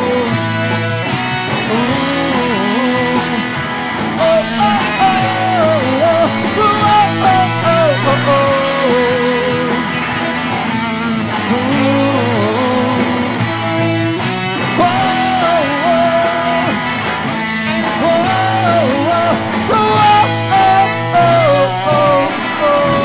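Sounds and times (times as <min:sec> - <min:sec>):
live rock band playing: 0:00.0 - 0:23.0
saxophone lead melody: 0:04.2 - 0:11.2, 0:12.4 - 0:23.0.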